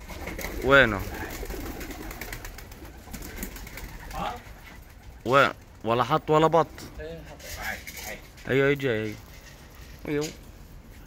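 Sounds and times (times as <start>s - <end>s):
pigeons cooing: 0.0s - 5.6s
pigeon wing flaps: 0.0s - 5.8s.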